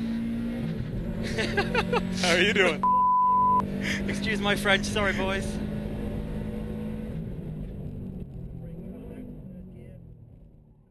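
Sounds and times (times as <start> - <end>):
car engine and road noise: 0.0 - 10.9.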